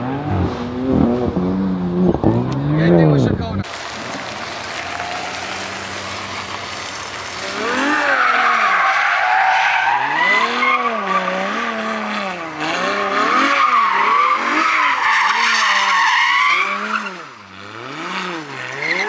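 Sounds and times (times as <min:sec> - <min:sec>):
car engine revving: 0:00.0 - 0:19.0
tyres squealing and skidding: 0:04.8 - 0:19.0.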